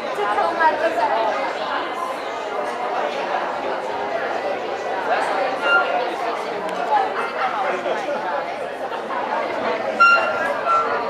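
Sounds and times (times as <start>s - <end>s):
chatter of people talking: 0.0s - 11.0s.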